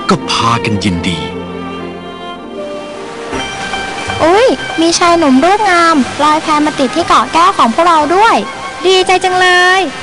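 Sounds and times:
background music chord: 0.0 - 9.2.

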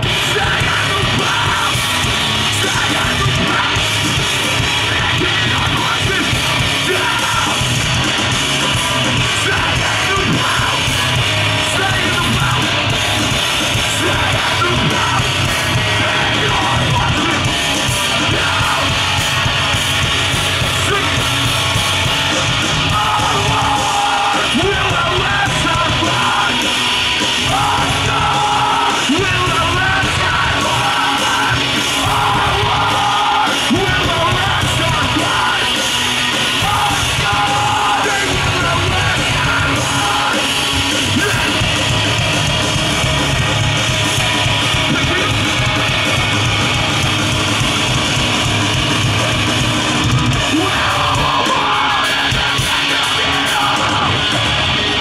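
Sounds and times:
bass guitar: 0.0 - 55.0
distorted electric guitars: 0.0 - 55.0
drums: 0.0 - 55.0
live metal band playing: 0.0 - 55.0
shouted lead vocal: 0.0 - 55.0.

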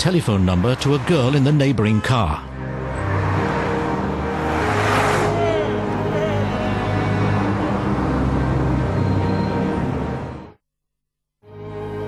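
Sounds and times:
car engines and tyre noise: 0.0 - 10.5
low music drone: 2.4 - 10.5.

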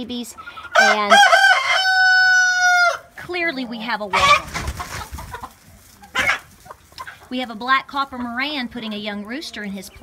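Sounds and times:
chickens clucking: 0.0 - 10.0
chicken squawk: 0.4 - 3.1, 4.1 - 7.3.

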